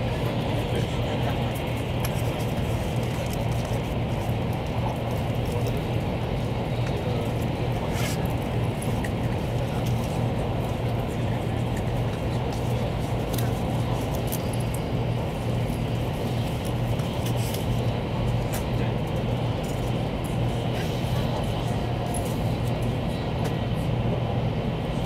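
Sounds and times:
train hum and rumble inside: 0:00.0 - 0:25.0.

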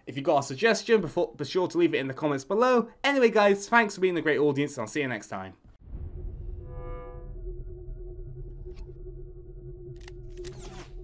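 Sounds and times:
sharp hit: 0:05.8 - 0:09.0
low rumbling drone: 0:05.8 - 0:11.0.

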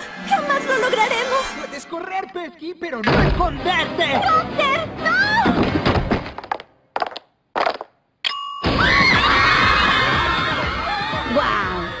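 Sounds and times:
music: 0:00.0 - 0:06.2, 0:08.9 - 0:12.0
brief ding: 0:08.3 - 0:08.7.

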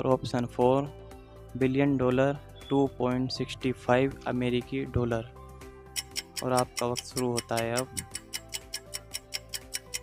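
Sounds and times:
soft held music: 0:00.0 - 0:10.0
rapid clock ticks: 0:06.0 - 0:10.0.

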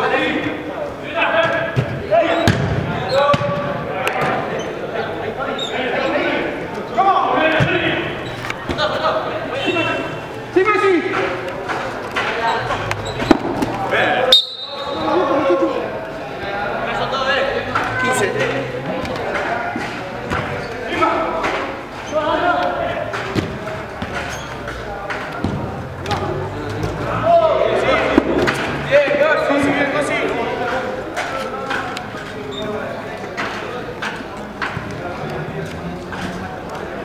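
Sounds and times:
players calling out: 0:00.0 - 0:37.0
ball kicked and bouncing: 0:01.7 - 0:04.4.

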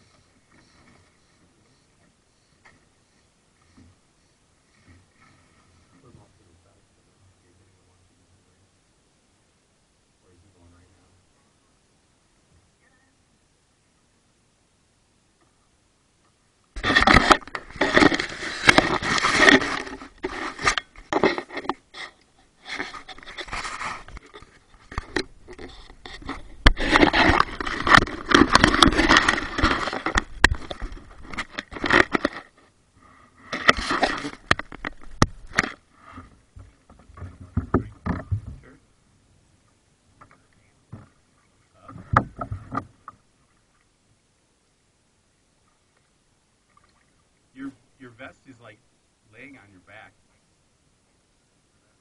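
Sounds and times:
paddle splashing water: 0:45.6 - 0:47.4.

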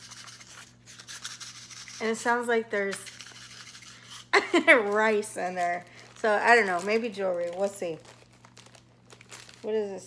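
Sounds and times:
plastic wrap crinkling: 0:03.0 - 0:10.0.

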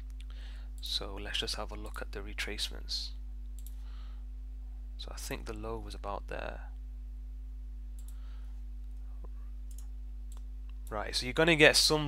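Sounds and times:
low electrical hum: 0:00.0 - 0:12.0
faint computer mouse clicks: 0:03.6 - 0:03.8.

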